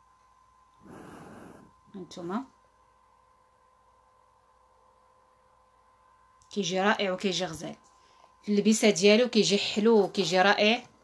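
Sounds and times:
thin steady hum: 0.0 - 11.0.

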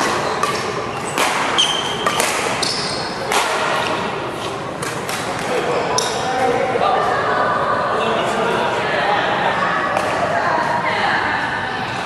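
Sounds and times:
shoes squeaking on court floor: 0.0 - 5.1, 5.8 - 6.3
rackets hitting shuttlecock: 0.0 - 6.2.

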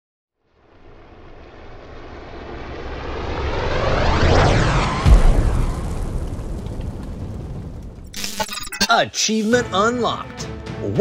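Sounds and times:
cinematic riser swell: 0.6 - 5.8
cinematic hit: 4.4 - 8.4.

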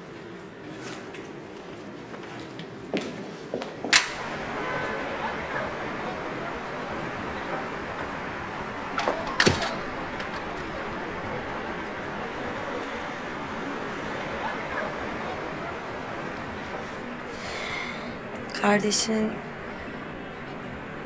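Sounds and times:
street ambience: 0.0 - 21.0.

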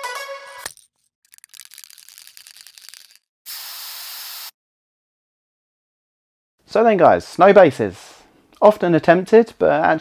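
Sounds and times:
spray can rattling when shaken: 0.7 - 3.3.

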